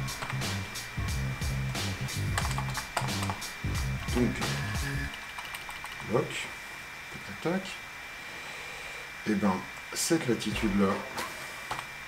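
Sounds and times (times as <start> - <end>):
low background music: 0.0 - 5.3, 10.5 - 11.6.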